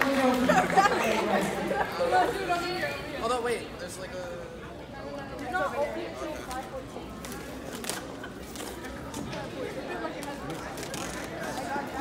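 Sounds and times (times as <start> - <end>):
indistinct group chatter: 0.0 - 12.0.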